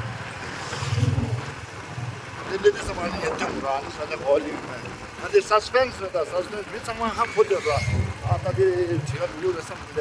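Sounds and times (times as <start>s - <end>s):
motorbike engine running: 0.0s - 10.0s.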